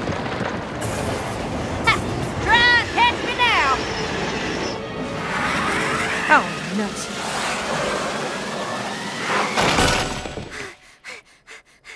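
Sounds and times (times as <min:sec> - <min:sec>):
loud crash: 0:09.3 - 0:10.5.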